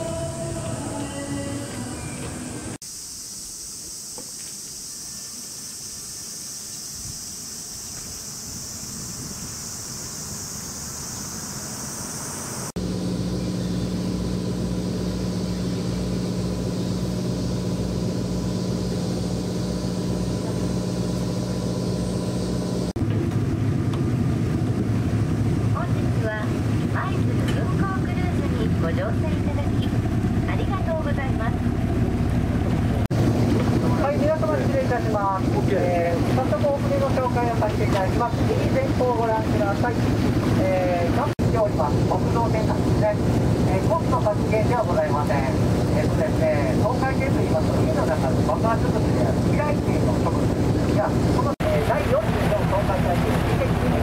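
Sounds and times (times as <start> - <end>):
boat engine humming: 0.0 - 2.8, 3.9 - 54.0
steady high-pitched hiss: 0.0 - 22.9
wind: 0.0 - 54.0.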